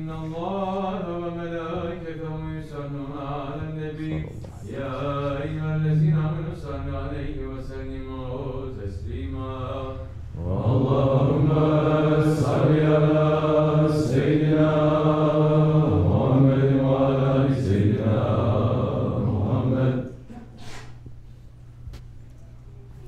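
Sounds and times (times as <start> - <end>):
men chanting in unison: 0.0 - 20.2.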